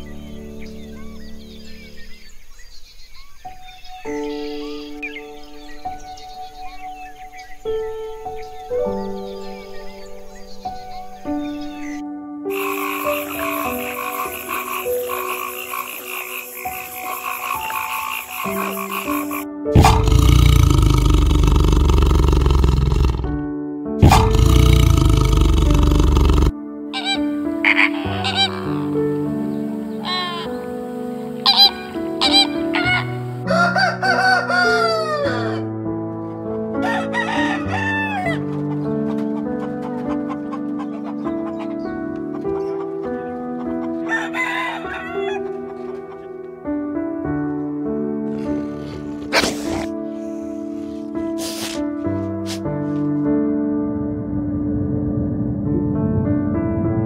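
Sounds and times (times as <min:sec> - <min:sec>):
background music: 0:00.0 - 0:57.0
frog calling: 0:12.5 - 0:23.4, 0:24.0 - 0:33.4
tiger growls: 0:12.5 - 0:26.5, 0:48.3 - 0:52.7
rooster crows: 0:27.0 - 0:28.9, 0:31.5 - 0:35.7, 0:36.8 - 0:38.5, 0:44.0 - 0:45.5.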